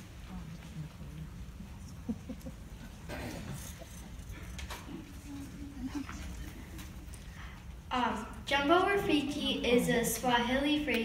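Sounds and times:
low rumbling hall noise: 0.0s - 11.0s.

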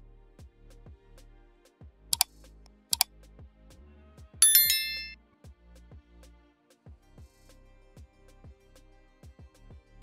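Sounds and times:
bright bell chime: 4.4s - 5.2s.

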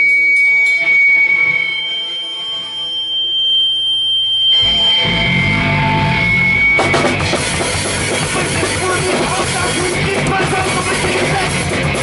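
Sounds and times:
ringing guitar chord: 0.0s - 10.2s
distorted guitar and bass playing: 0.0s - 12.0s
guitar amplifier feedback whine: 0.0s - 12.0s.

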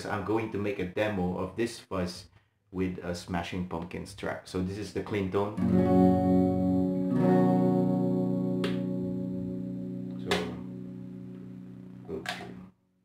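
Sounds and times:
clean electric guitar chords ringing: 5.6s - 12.7s.

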